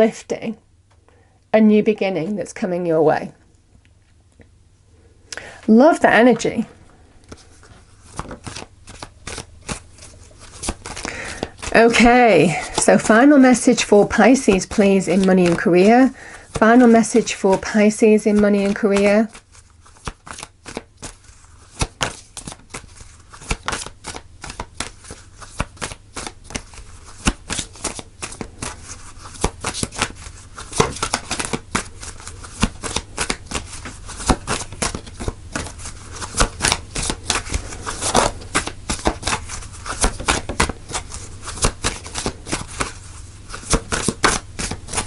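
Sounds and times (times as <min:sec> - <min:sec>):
cards being shuffled: 0:07.2 - 0:45.0.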